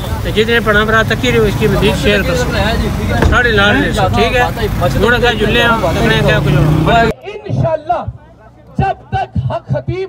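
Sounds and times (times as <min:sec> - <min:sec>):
man talking: 0:00.2 - 0:10.0.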